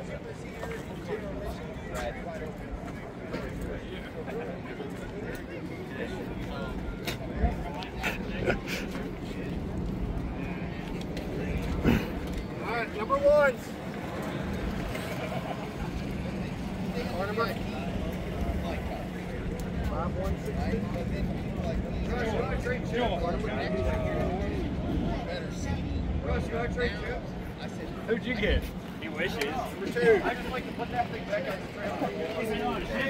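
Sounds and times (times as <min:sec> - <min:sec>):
people talking: 0:00.0 - 0:33.0.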